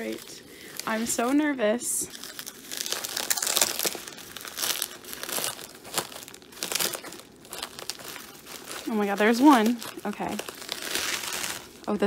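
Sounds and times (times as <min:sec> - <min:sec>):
bubble wrap crinkling: 0:00.0 - 0:12.0.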